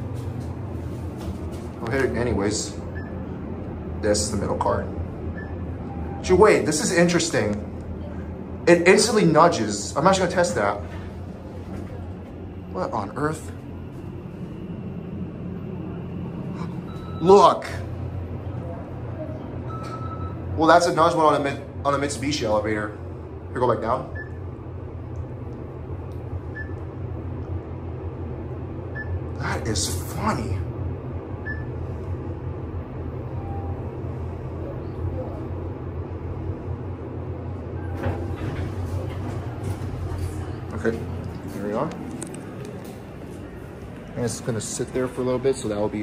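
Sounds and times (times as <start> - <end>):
elevator doors sliding open: 0.0 - 7.5, 8.8 - 22.8, 37.3 - 45.9
low hum: 0.0 - 46.0
elevator doors sliding shut: 37.4 - 44.2.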